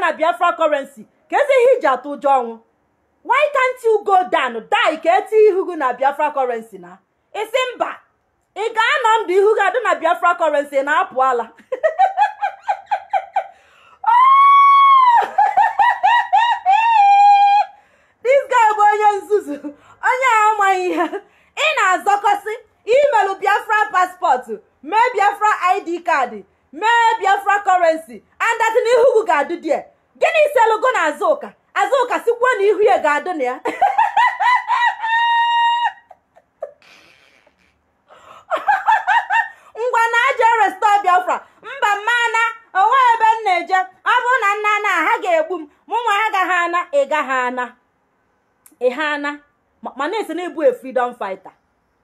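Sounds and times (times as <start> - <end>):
woman laughing: 11.2 - 17.7, 33.4 - 40.4.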